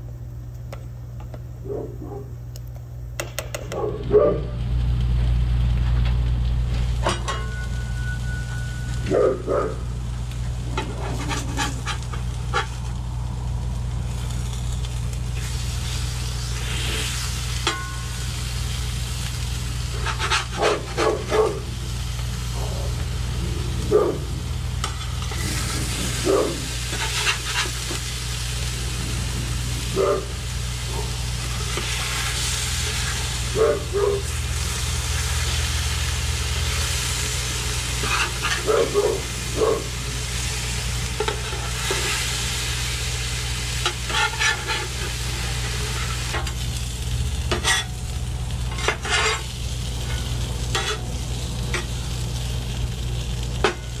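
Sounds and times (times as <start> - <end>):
steady low hum: 0.0 - 54.0
meat and potatoes sizzling on griddle: 3.9 - 54.0
metal spatulas scraping and tapping: 10.8 - 12.7, 20.0 - 21.1, 43.8 - 44.9, 47.5 - 47.9, 48.7 - 49.4, 50.2 - 51.0.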